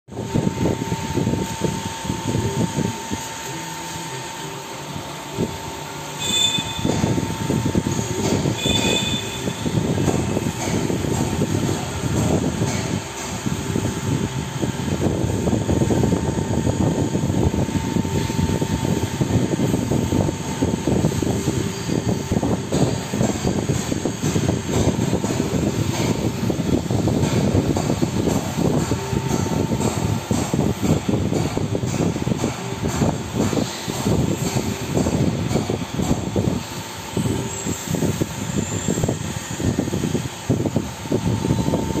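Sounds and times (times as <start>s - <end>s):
loud mechanical rumble: 0.0s - 42.0s
steady hum: 0.0s - 42.0s.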